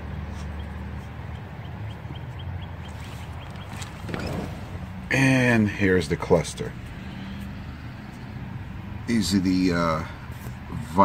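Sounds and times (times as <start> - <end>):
low engine hum: 0.0 - 11.0.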